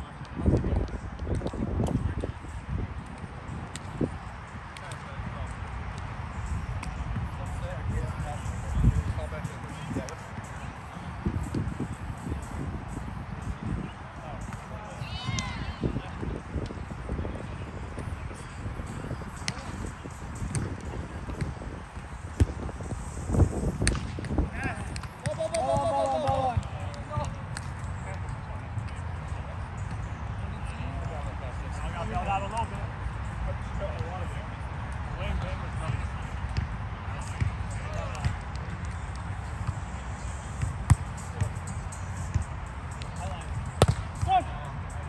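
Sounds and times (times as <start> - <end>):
hands slapping a ball: 20.5 - 20.7, 23.8 - 27.7, 43.8 - 44.2.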